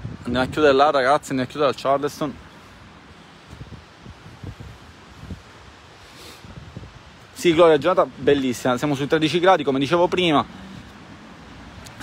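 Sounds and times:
breeze buffeting microphone: 0.0s - 12.0s
steady outdoor hiss: 0.0s - 12.0s.

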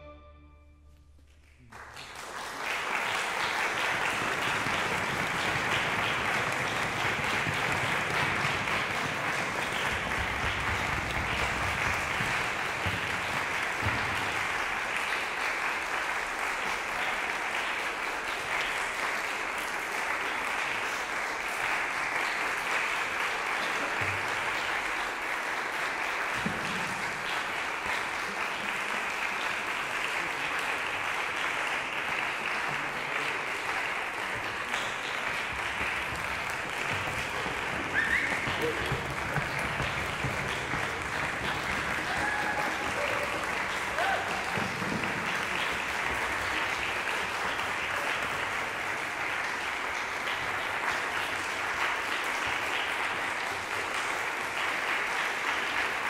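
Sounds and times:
music: 0.0s - 1.6s
audience applauding: 1.3s - 56.0s.

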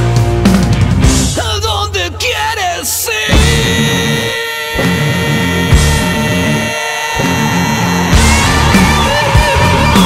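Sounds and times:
instrumental rock music: 0.0s - 10.0s
electric guitar: 3.3s - 10.0s.

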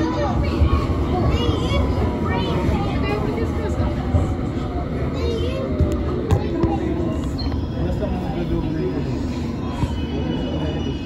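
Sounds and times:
passengers chattering: 0.0s - 11.0s
train rumble from inside carriage: 0.0s - 11.0s.

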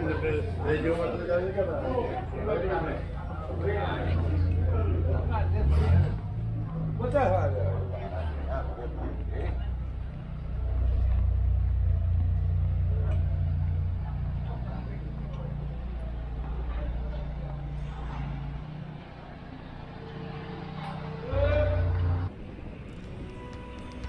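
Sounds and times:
faint voices of passers-by: 0.0s - 24.0s
vehicle engine rumbling: 0.0s - 24.0s.

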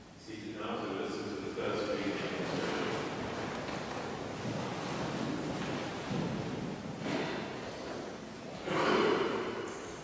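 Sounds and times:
congregation shuffling: 0.3s - 10.0s
clothes rustling: 2.4s - 8.6s.

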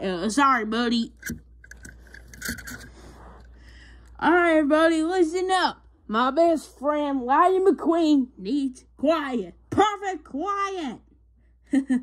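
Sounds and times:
toy cars knocking and scraping: 1.2s - 3.1s.

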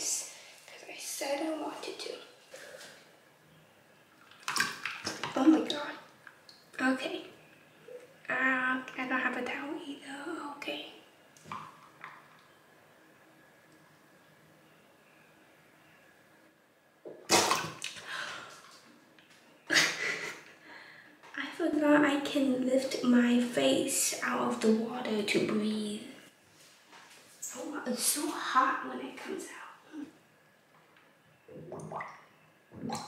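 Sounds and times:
water splashing into a bowl: 4.2s - 5.9s
water splashing in a bowl: 4.2s - 6.8s, 17.1s - 18.8s.

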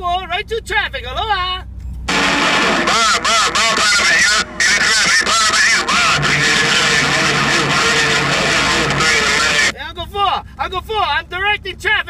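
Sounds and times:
garbled radio speech: 2.1s - 9.7s
low hum: 2.1s - 9.7s
radio static hiss: 2.1s - 9.7s.

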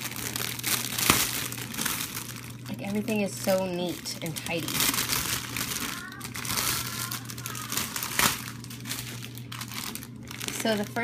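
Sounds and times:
plastic packaging crinkling: 0.0s - 11.0s.

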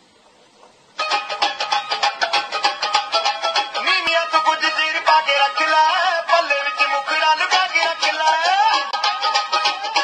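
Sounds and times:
loud music with fast repeated notes: 1.0s - 10.0s.

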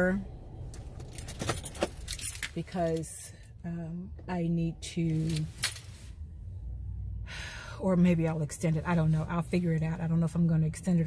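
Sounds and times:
car interior rumble: 0.0s - 11.0s
keys jingling and clicking: 0.8s - 2.6s.

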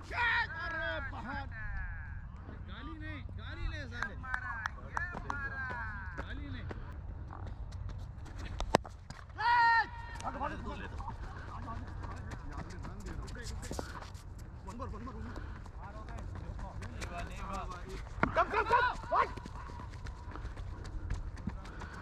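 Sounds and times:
player shouting: 9.4s - 10.2s, 18.3s - 19.5s.

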